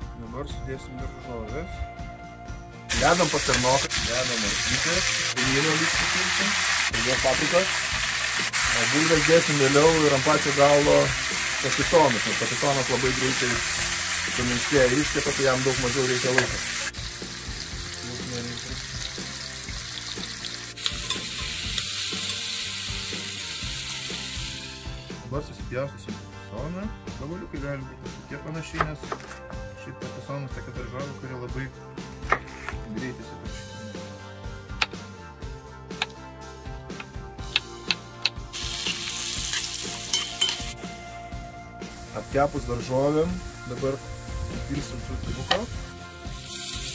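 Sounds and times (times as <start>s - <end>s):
vegetables sizzling in a pan: 2.9s - 25.1s, 38.5s - 40.8s, 41.9s - 46.9s
knife chopping on wooden board: 28.8s - 29.4s, 32.2s - 32.8s
spoon stirring and scraping pan: 38.8s - 40.7s.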